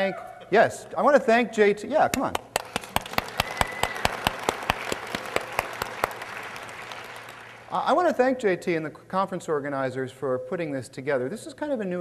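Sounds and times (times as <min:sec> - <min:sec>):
audience applauding: 0:02.3 - 0:08.0.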